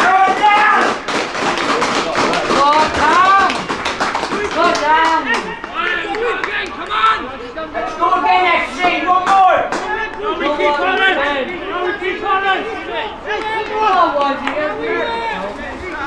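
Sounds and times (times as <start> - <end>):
handclaps: 0.0 - 7.1, 9.2 - 10.3, 13.3 - 14.6
people shouting and cheering: 0.0 - 16.0.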